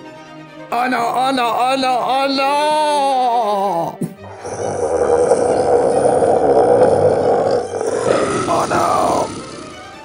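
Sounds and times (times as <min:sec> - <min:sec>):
background music: 0:00.0 - 0:10.0
dinosaur growling roar: 0:04.3 - 0:10.0.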